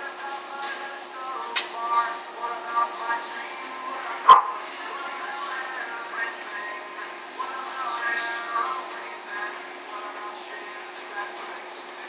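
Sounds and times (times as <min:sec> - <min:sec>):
dog barking: 0:04.3 - 0:04.6.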